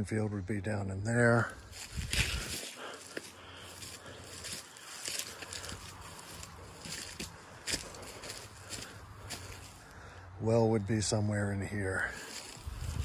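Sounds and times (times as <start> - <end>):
footsteps through grass and leaves: 1.3 - 10.1, 11.3 - 13.0.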